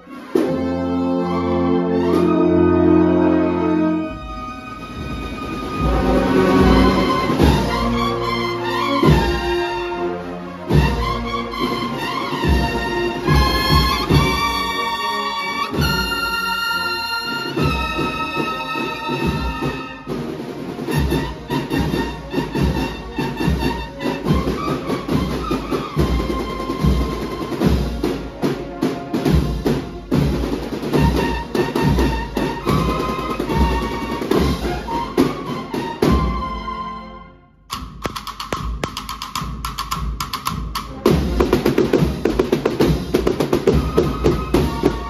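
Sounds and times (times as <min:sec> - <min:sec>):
brass chord: 0:00.0 - 0:17.7
cornets holding notes: 0:00.0 - 0:36.1, 0:37.7 - 0:45.0
marching band playing: 0:00.0 - 0:45.0
low drum beats: 0:05.6 - 0:08.3, 0:37.7 - 0:45.0.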